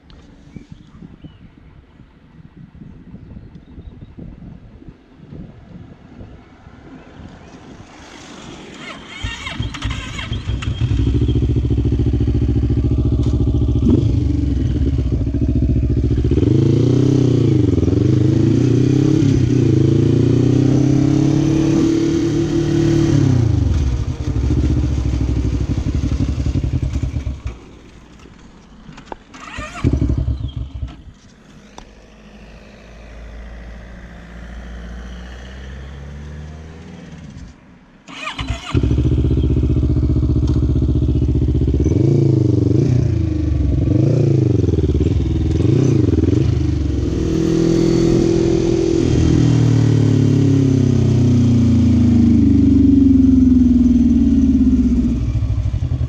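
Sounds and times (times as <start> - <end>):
quad bike engine revving: 8.8 - 27.4, 29.4 - 30.9, 38.1 - 56.0.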